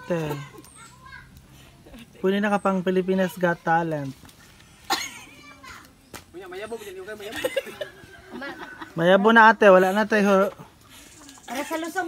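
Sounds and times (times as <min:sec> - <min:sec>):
people and children talking: 0:00.0 - 0:12.0.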